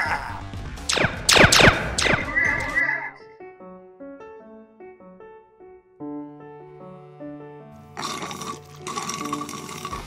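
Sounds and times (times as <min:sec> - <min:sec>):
laser gun zap: 0:00.9 - 0:03.0
soft piano music: 0:03.1 - 0:09.9.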